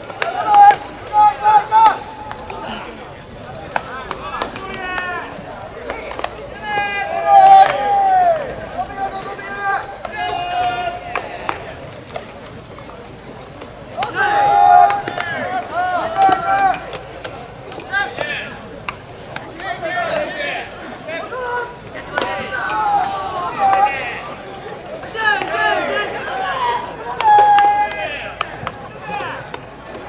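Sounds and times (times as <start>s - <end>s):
bat cracking baseballs: 0.0s - 30.0s
players shouting calls: 0.0s - 30.0s.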